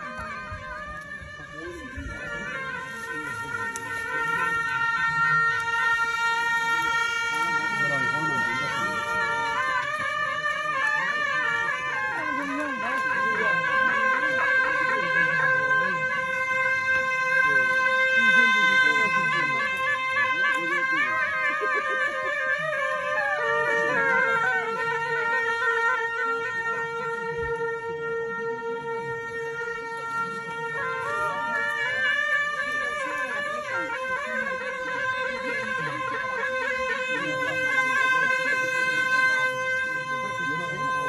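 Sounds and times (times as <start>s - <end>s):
crowd murmuring: 0.0s - 41.0s
double-reed horns playing: 0.0s - 41.0s.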